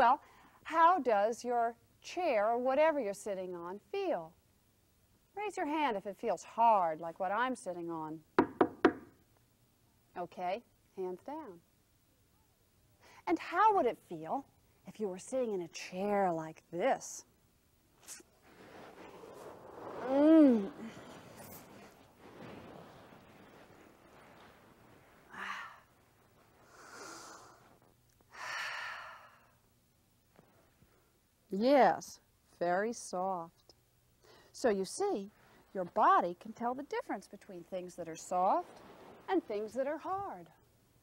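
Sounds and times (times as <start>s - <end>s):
knocks on wooden bench: 8.4s - 9.1s.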